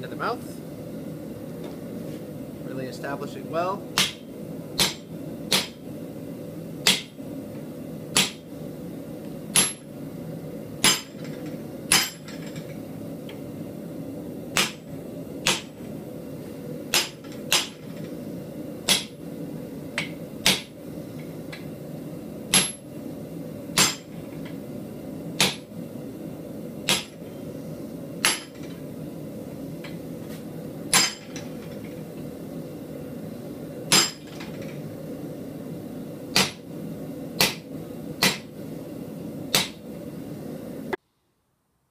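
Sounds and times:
steady low hum: 0.0 - 41.0
hammer striking chisel: 4.8 - 5.8, 6.8 - 7.1, 10.8 - 11.2, 11.9 - 12.4, 18.9 - 19.1, 20.0 - 20.7, 22.5 - 22.8, 23.8 - 24.2, 26.9 - 27.2, 28.2 - 28.7, 30.9 - 31.5, 33.9 - 34.4, 36.4 - 36.6, 37.4 - 37.6, 38.2 - 38.5, 39.5 - 39.8.

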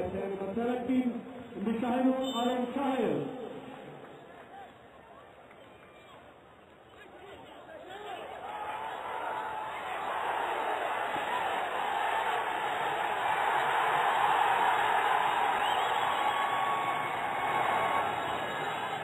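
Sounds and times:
stadium crowd roaring: 7.3 - 19.0.

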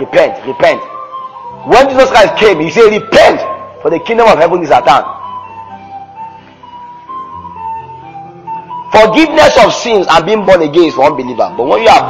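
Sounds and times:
man speaking: 0.0 - 0.9, 1.7 - 5.2, 8.9 - 12.0
slow electronic music: 0.0 - 12.0.

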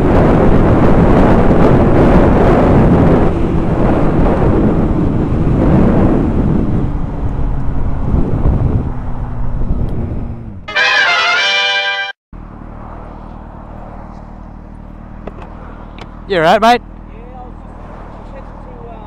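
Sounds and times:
wind rush over microphone: 0.0 - 10.6
motorcycle engine drone: 0.0 - 11.0, 11.8 - 19.0
brass fanfare: 10.7 - 12.2.

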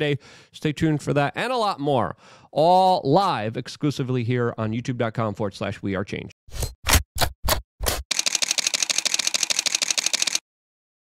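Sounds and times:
camera shutter burst: 8.1 - 10.4.

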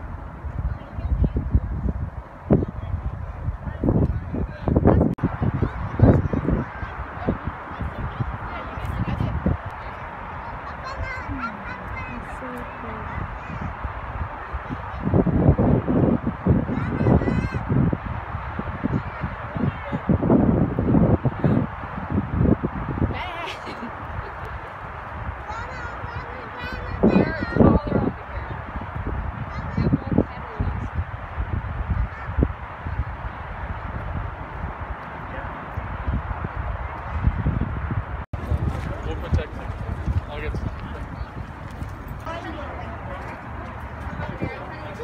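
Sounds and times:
wind buffeting microphone: 0.0 - 45.0
people talking indistinctly: 2.5 - 15.3, 23.1 - 31.0, 38.4 - 45.0.

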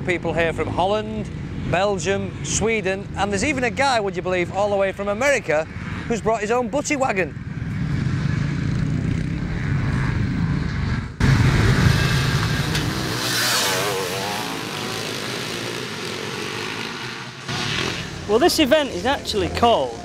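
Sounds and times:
motorcycle engines revving: 0.0 - 20.0.

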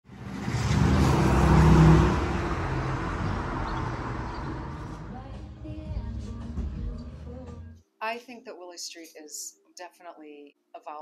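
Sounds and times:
vehicle passing by: 0.1 - 5.6.

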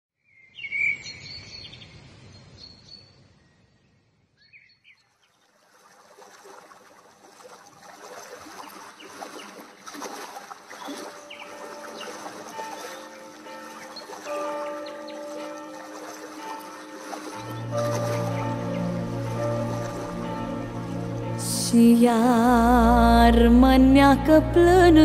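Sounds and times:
bird chirps: 0.2 - 5.4, 10.7 - 20.0
flowing stream: 5.0 - 25.0
slow instrumental music: 10.7 - 25.0.

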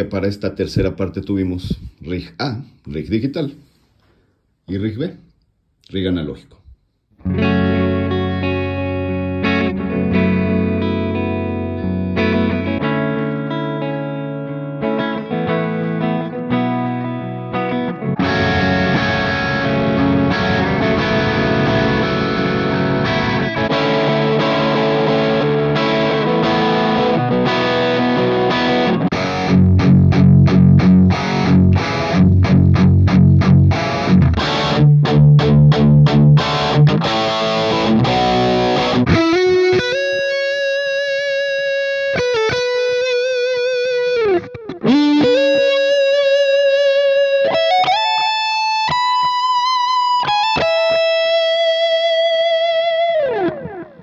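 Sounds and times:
distorted electric guitar: 7.2 - 54.0.

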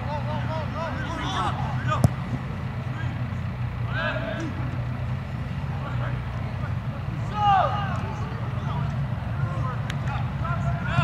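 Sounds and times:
players shouting: 0.0 - 5.0, 5.6 - 11.0
steady low hum: 0.0 - 11.0
ball kicked hard: 2.0 - 2.4.

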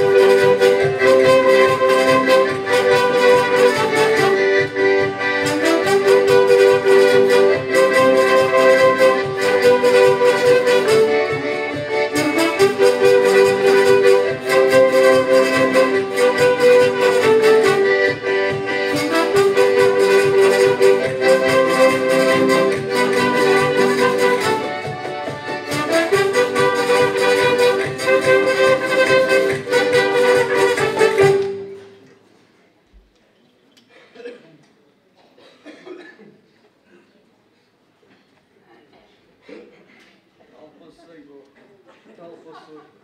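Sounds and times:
cajon beat: 0.0 - 31.8
trumpet: 0.0 - 31.9
alto saxophone: 0.0 - 32.0.

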